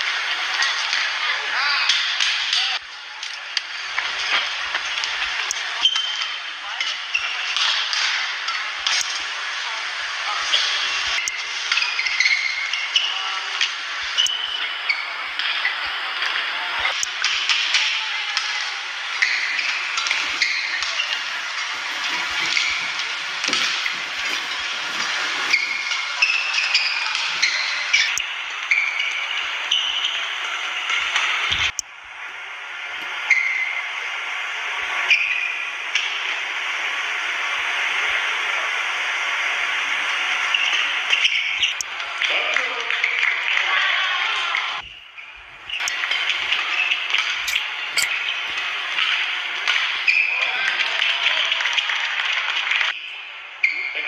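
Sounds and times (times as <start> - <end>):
crowd hubbub: 6.5 - 32.2
shoes squeaking on court: 19.2 - 29.0, 47.4 - 48.6.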